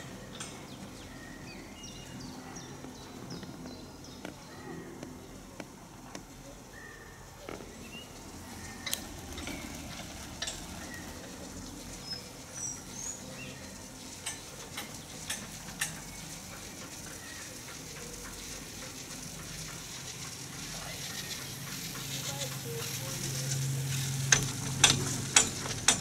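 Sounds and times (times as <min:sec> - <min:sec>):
chairlift rustling hiss: 0:00.0 - 0:26.0.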